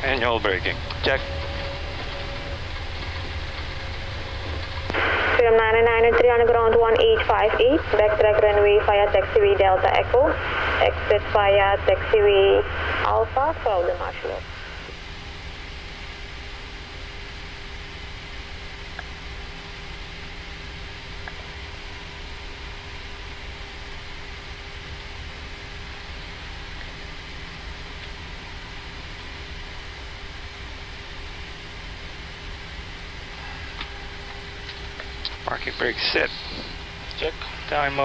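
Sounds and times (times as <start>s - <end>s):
low rumble: 0.0s - 14.8s
cockpit ventilation rush: 0.0s - 38.0s
faint hum: 0.0s - 38.0s.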